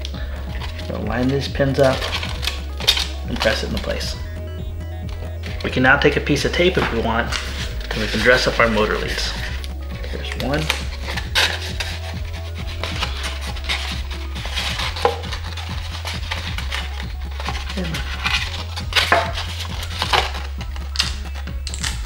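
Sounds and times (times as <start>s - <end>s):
background music: 0.0s - 22.0s
tape rubbing and rustling: 0.0s - 22.0s.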